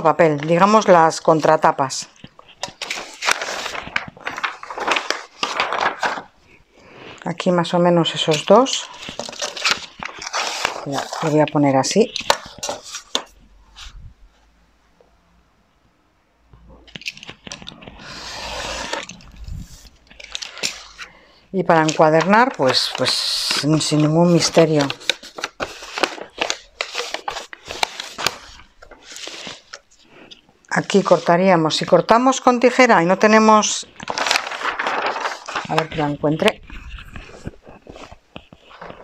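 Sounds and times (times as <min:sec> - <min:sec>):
soft paper rustle: 0:00.0 - 0:14.5, 0:16.8 - 0:39.0.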